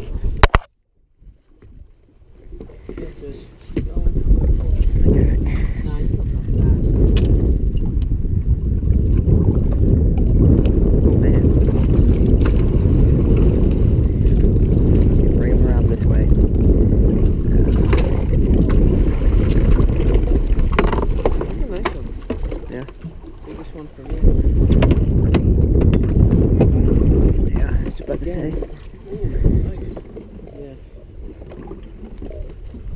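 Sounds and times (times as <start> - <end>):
light knocks and clicks from boat: 0.0 - 8.2, 14.1 - 15.0, 17.2 - 32.9
wind buffeting microphone: 0.0 - 32.9.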